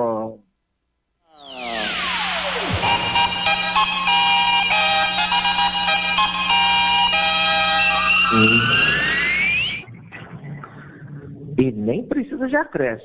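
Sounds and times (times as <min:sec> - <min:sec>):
electronic radio jingle: 0:01.3 - 0:10.6.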